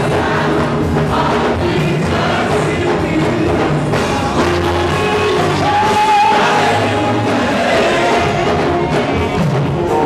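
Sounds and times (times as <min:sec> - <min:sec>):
congregation and choir singing gospel: 0:00.0 - 0:10.0.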